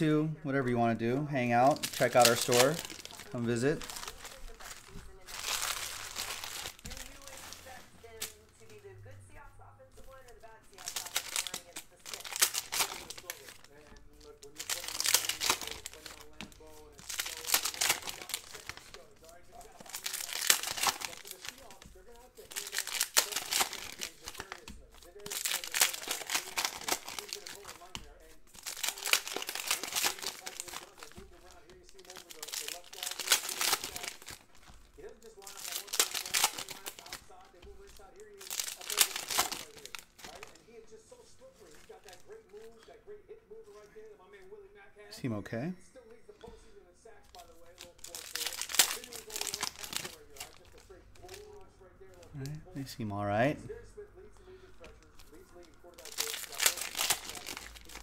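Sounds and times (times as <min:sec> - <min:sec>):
foil wrappers torn and crinkled: 0:01.6 - 0:08.8, 0:10.2 - 0:42.8, 0:47.3 - 0:53.0, 0:54.8 - 0:58.0.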